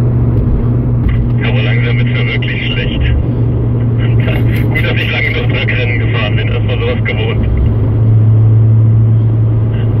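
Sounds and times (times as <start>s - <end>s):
car engine droning: 0.0s - 10.0s
road and wind noise: 0.0s - 10.0s.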